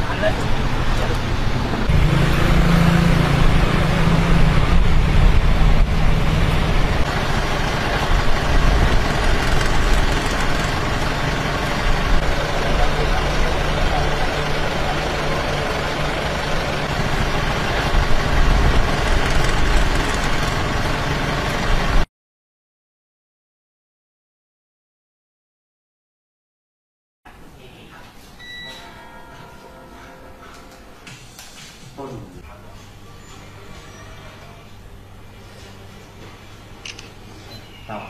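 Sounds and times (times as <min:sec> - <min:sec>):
road traffic: 0:00.0 - 0:22.1.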